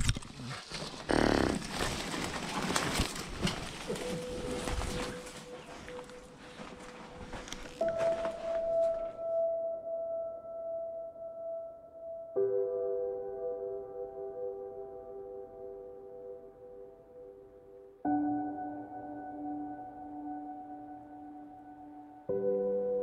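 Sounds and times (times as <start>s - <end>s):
rustling through leafy undergrowth: 0.4s - 9.2s
soft ambient music: 1.9s - 23.0s
footsteps clicking: 2.9s - 9.1s.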